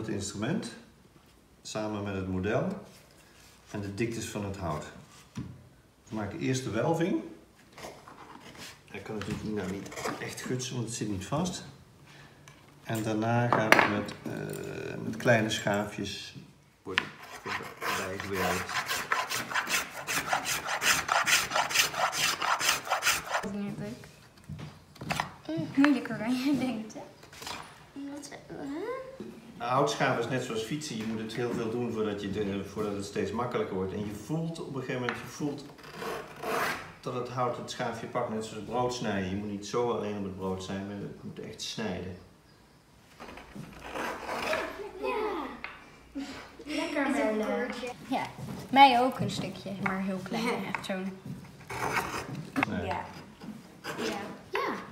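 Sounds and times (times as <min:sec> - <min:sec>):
finger plane scraping wood: 0:17.2 - 0:23.5, 0:43.8 - 0:44.8
children's voices: 0:44.3 - 0:50.7, 0:53.9 - 0:54.9.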